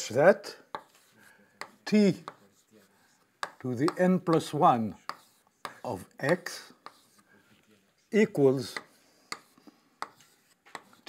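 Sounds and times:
chalk tapping and scraping on blackboard: 0:00.5 - 0:11.0.

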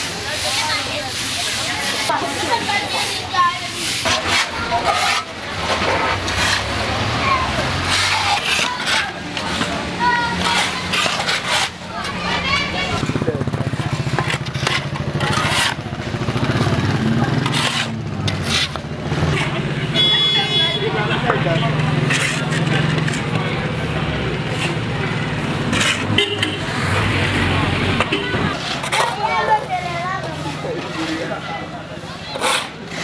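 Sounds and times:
shovels scraping sand: 0:00.0 - 0:19.6, 0:21.9 - 0:33.0
people talking: 0:00.0 - 0:33.0
street noise: 0:00.0 - 0:33.0.

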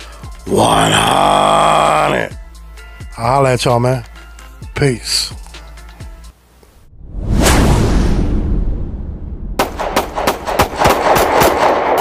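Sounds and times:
rapid loud sharp bangs: 0:09.6 - 0:12.0.

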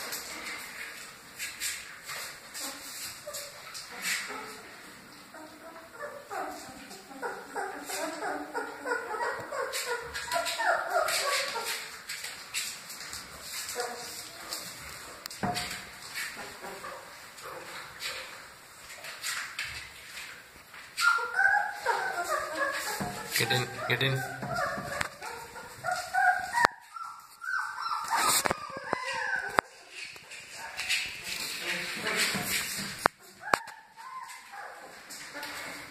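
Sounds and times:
puppy whimpering: 0:05.3 - 0:12.0, 0:21.0 - 0:29.9, 0:33.4 - 0:34.8
scuffling and rustling on floor: 0:21.7 - 0:35.9.

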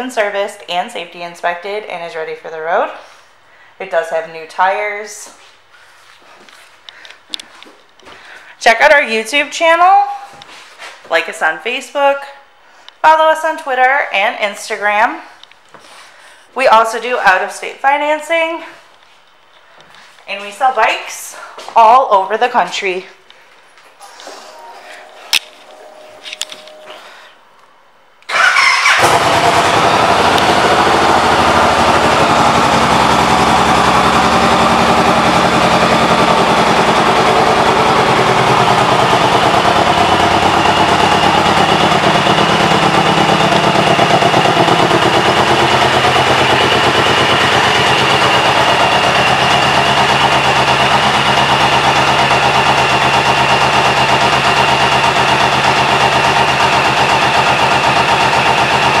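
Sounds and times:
motorcycle engine idling: 0:28.3 - 0:59.0.

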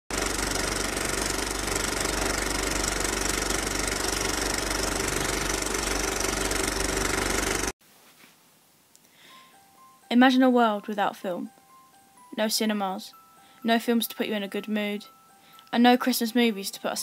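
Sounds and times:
film projector clattering: 0:00.1 - 0:07.7.

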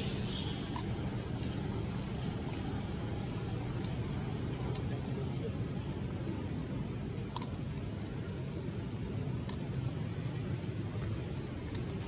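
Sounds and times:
low outdoor rumble: 0:00.0 - 0:12.0.

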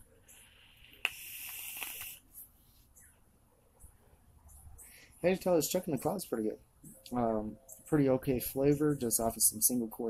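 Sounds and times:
air rushing and coil sizzle: 0:00.3 - 0:02.4
coil sizzling: 0:00.3 - 0:02.4.

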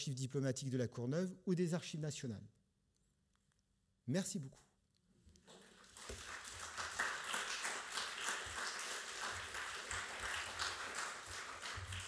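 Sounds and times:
audience applauding: 0:05.5 - 0:12.0.

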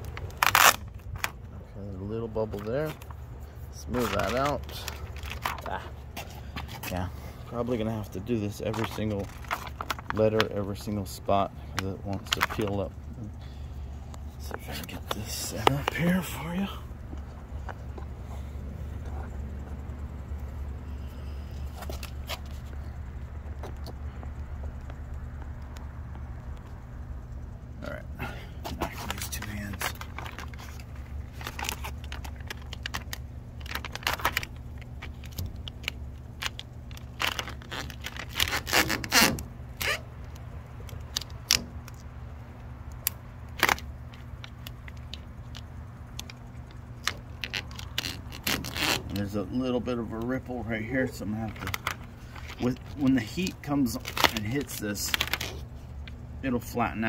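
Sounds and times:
plastic film crinkling: 0:00.0 - 0:01.5, 0:02.4 - 0:06.0, 0:08.2 - 0:11.2, 0:12.1 - 0:12.8, 0:28.7 - 0:42.0, 0:43.5 - 0:56.2
steady low hum: 0:00.0 - 0:57.0.

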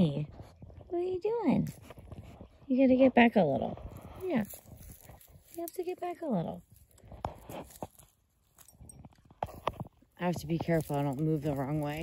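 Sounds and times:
goat tearing at grass: 0:01.6 - 0:02.6, 0:03.8 - 0:12.0.

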